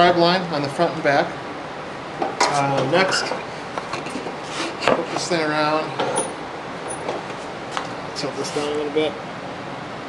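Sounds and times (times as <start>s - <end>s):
steady hiss: 7.3s - 9.2s.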